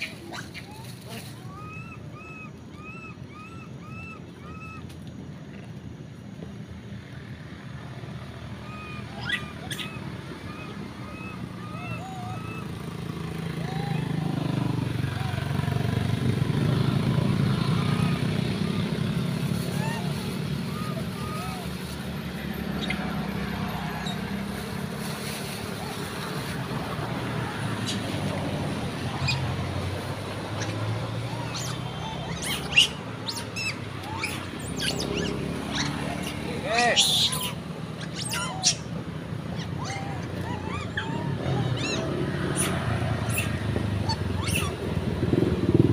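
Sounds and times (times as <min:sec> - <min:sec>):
monkeys squeaky calls: 0:00.0 - 0:04.9, 0:08.5 - 0:24.4, 0:25.6 - 0:45.0
road traffic rumble: 0:00.0 - 0:45.9
vehicle passing: 0:00.0 - 0:45.9.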